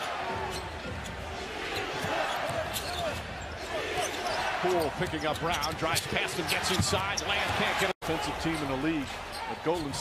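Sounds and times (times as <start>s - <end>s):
arena crowd noise: 0.0s - 10.0s
sneakers squeaking on floor: 0.3s - 7.4s.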